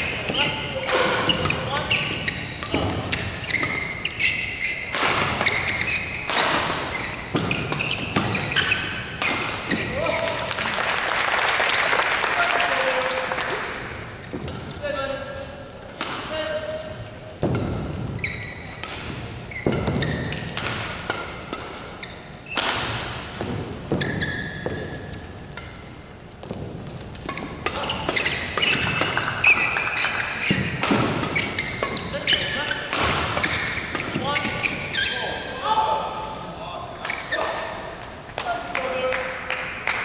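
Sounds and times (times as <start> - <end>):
shoes squeaking on court: 0.0 - 10.4, 14.1 - 35.6, 37.0 - 38.2
racket striking shuttlecock: 0.1 - 10.2, 15.9 - 34.7
voices in a hall: 9.7 - 18.7.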